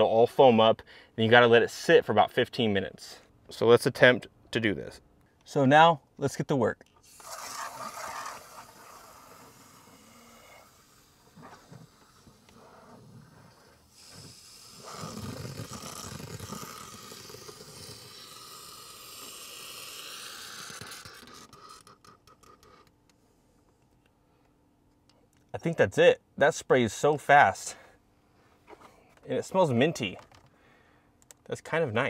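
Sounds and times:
aerosol can spraying hiss: 7.0s - 21.8s.

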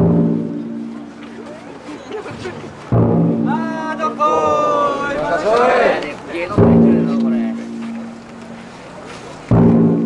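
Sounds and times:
taiko drum ringing: 0.0s - 1.2s, 2.9s - 5.2s, 6.5s - 8.6s, 9.5s - 10.0s
crowd voices: 0.2s - 9.6s.

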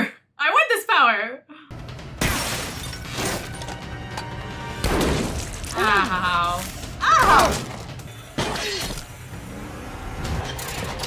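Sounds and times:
film score music: 1.5s - 11.0s.

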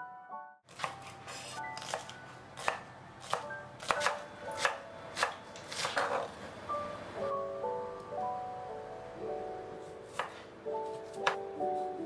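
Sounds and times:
knife chopping on cutting board: 0.7s - 6.3s, 10.1s - 11.5s.

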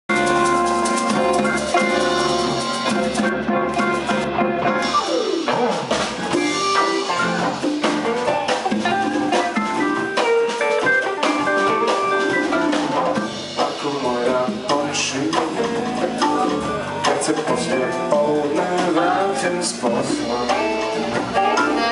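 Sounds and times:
drum kit steady beat: 0.1s - 21.9s
electric guitars: 0.1s - 21.9s
saxophone: 20.1s - 21.9s.

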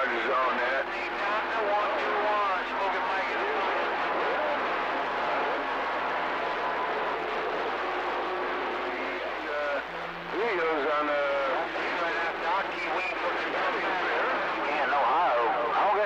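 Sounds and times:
garbled radio voice: 0.0s - 4.7s, 8.9s - 16.0s.

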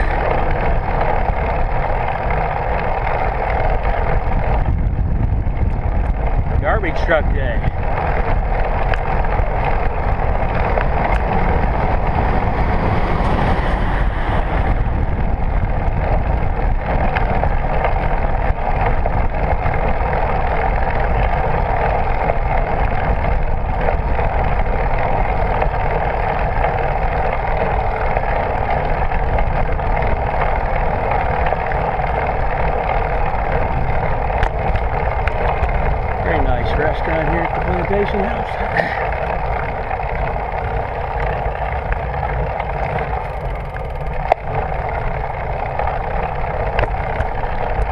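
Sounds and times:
bicycle road rumble: 0.0s - 47.9s
wind rush: 0.0s - 47.9s.

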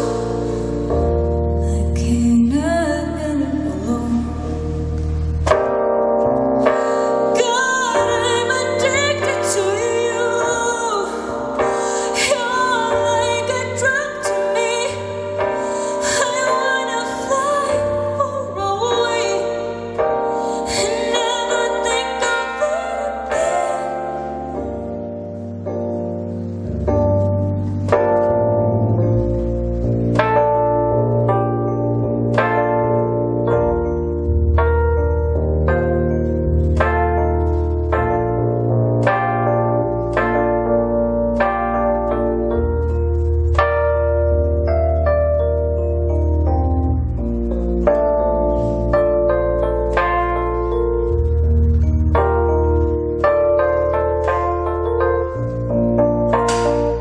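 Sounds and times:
keyboard chords: 0.0s - 57.0s.

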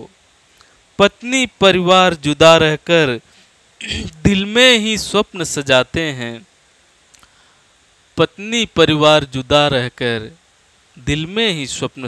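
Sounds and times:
faint short click: 7.1s - 7.4s.

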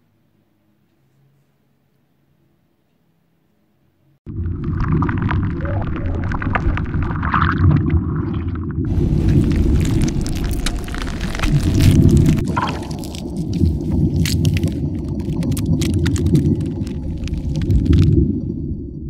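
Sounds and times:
sharp crackles: 4.3s - 18.7s
deep rumbling: 4.3s - 19.0s.

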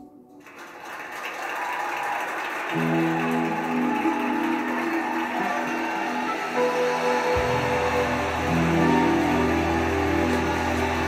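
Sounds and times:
backing music: 2.7s - 11.0s
electric guitar notes: 2.8s - 11.0s.

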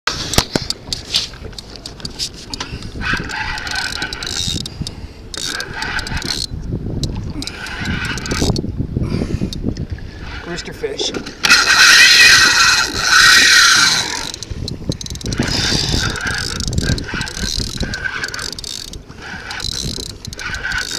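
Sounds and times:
fishing reel whirring: 0.1s - 8.7s, 11.4s - 20.9s
rumble of wind and water: 0.1s - 20.9s.

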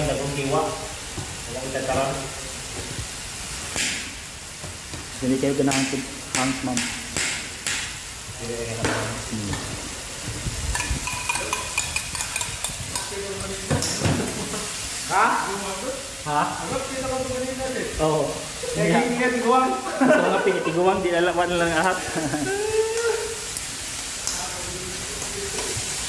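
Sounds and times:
food sizzling in a wok: 0.0s - 26.0s.

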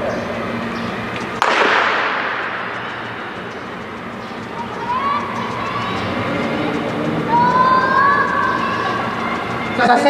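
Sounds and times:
stadium crowd noise: 0.0s - 10.0s
spectators shouting encouragement: 4.4s - 10.0s.

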